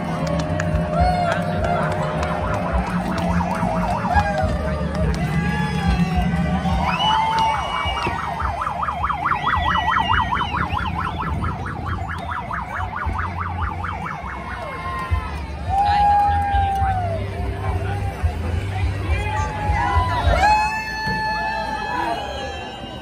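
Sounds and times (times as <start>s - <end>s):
crowd: 0.0s - 23.0s
electronic siren yelping: 1.9s - 15.0s.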